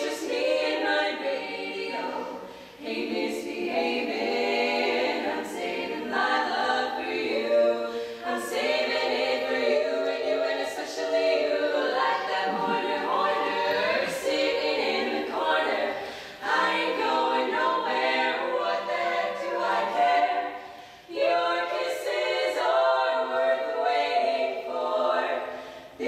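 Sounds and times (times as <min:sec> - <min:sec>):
women singing a cappella in harmony: 0:00.0 - 0:26.0.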